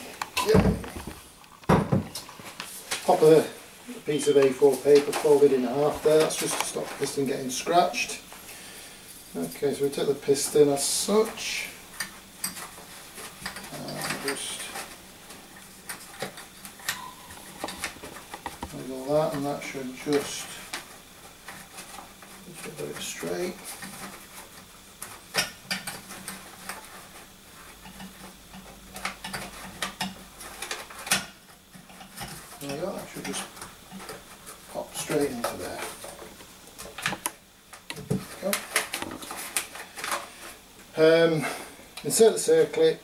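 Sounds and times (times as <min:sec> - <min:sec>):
paper rustling: 0:02.2 - 0:08.1.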